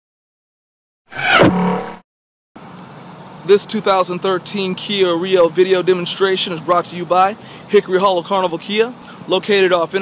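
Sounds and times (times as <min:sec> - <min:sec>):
faint outdoor background noise: 0:02.6 - 0:10.0.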